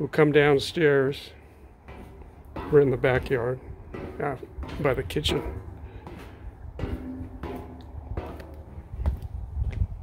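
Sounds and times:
footsteps on steel stairs and concrete: 0.0s - 10.0s.

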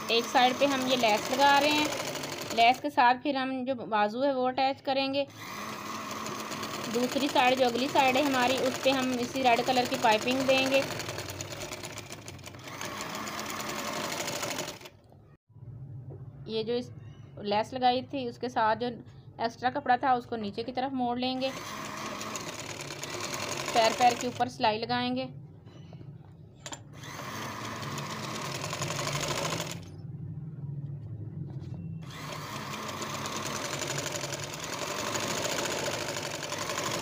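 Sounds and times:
sewing machine stitching: 0.0s - 2.9s, 5.3s - 15.0s, 21.4s - 24.5s, 26.7s - 29.9s, 32.0s - 37.0s.

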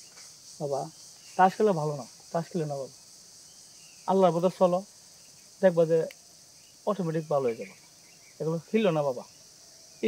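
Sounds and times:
high-pitched hiss: 0.0s - 10.0s
man speaking: 0.6s - 2.9s, 5.6s - 6.1s, 6.9s - 7.8s, 8.4s - 9.3s.

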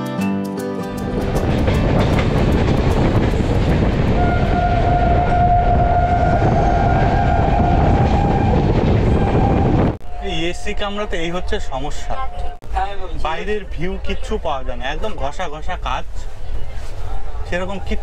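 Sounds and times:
train wheels rumbling on rails: 0.9s - 13.6s
train horn blast: 4.1s - 12.6s.

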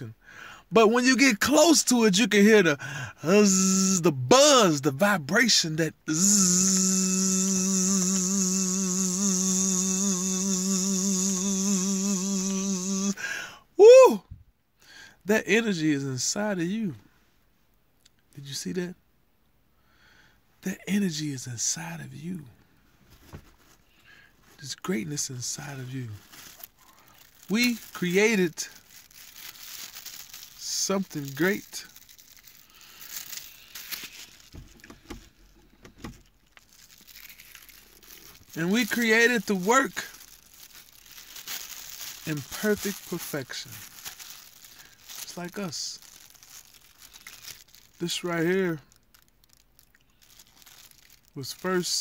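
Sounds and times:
loud vocal cry: 6.1s - 13.2s
man humming low buzzing note: 6.1s - 13.2s.

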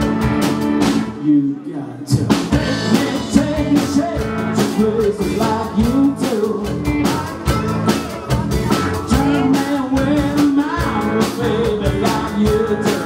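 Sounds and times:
live rock band playing: 0.0s - 1.3s, 2.1s - 13.0s
gliding melodic lead line: 2.6s - 13.0s.

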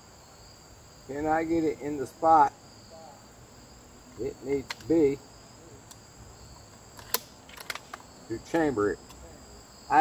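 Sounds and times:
crickets chirring: 0.0s - 10.0s
air rifle action clicks: 7.0s - 9.2s.

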